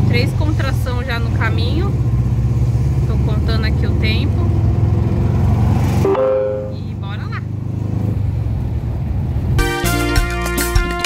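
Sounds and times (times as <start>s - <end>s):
van engine rumbling: 0.0s - 11.0s
music: 6.1s - 6.8s, 9.6s - 11.0s.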